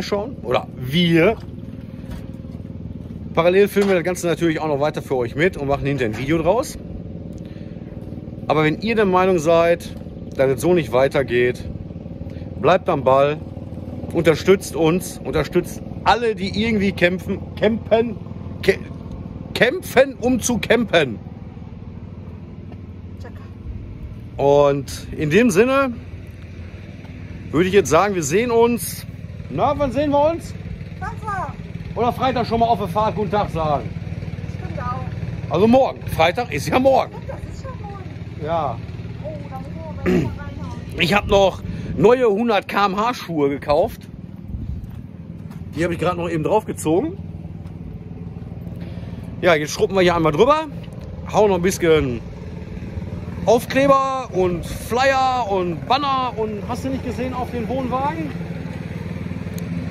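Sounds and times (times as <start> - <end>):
man speaking: 0.0 - 1.5, 3.3 - 6.8, 8.4 - 11.7, 24.4 - 26.0, 41.0 - 44.0, 45.7 - 47.2, 53.4 - 58.4
small motor droning: 0.0 - 59.9.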